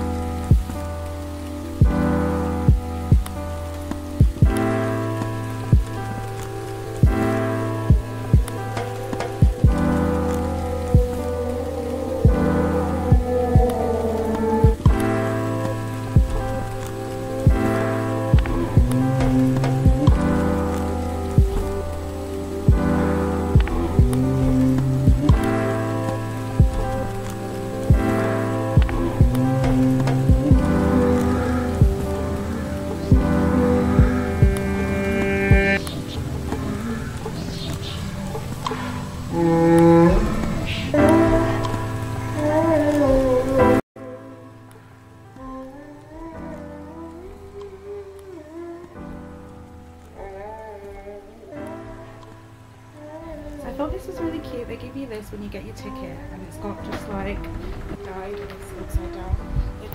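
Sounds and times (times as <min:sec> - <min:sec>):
slow sustained chords: 0:00.0 - 0:55.1.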